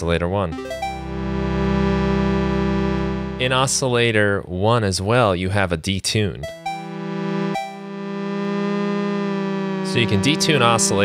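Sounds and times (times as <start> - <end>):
sustained synth note: 0.6 - 3.5, 6.4 - 11.0.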